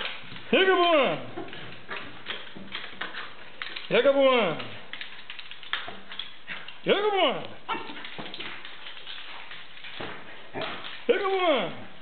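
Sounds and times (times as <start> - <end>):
dog paws tapping on wooden floor: 0.0 - 12.0.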